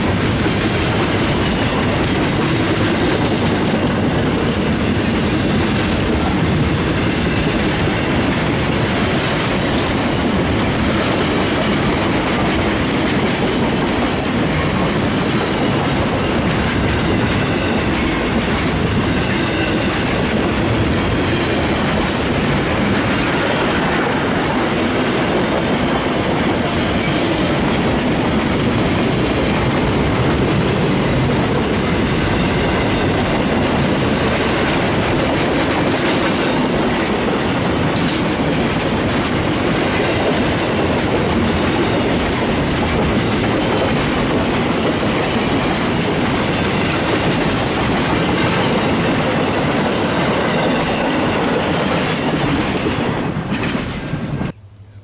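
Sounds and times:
train wheels rolling on rails: 0:00.0 - 0:55.0.

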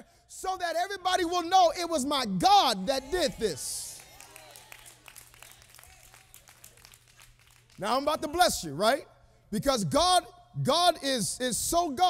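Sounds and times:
faint hand claps: 0:04.0 - 0:07.8.

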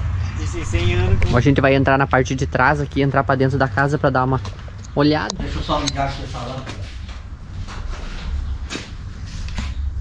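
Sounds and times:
steady low rumble: 0:00.0 - 0:09.2.

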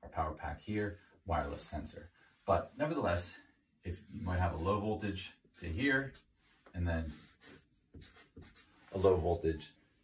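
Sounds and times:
marker writing on whiteboard: 0:07.0 - 0:09.2.

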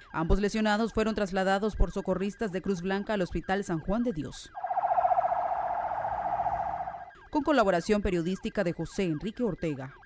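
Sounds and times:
ambulance siren warbling: 0:04.5 - 0:07.3.

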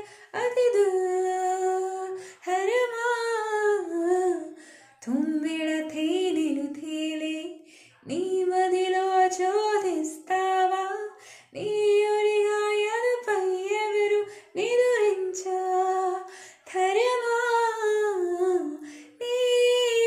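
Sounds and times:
woman singing unaccompanied: 0:00.0 - 0:20.0.

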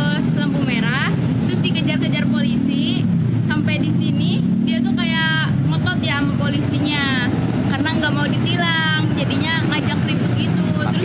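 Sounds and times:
vehicle engine rumble: 0:00.0 - 0:11.0
woman speaking: 0:00.0 - 0:11.0.

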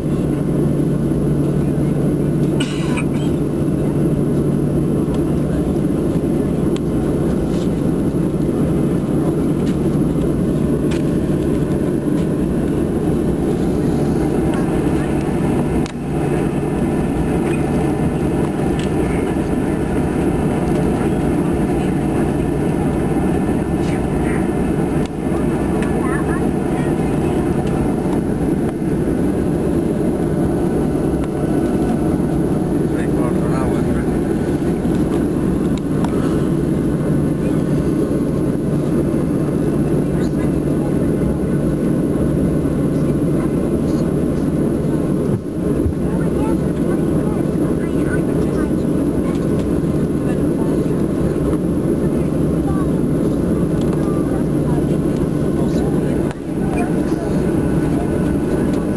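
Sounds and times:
faint background voices: 0:00.0 - 0:58.9
jet engines and cabin air drone: 0:00.0 - 0:58.9.

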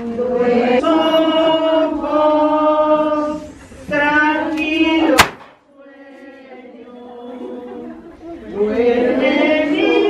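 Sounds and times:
group singing religious song: 0:00.0 - 0:10.0.

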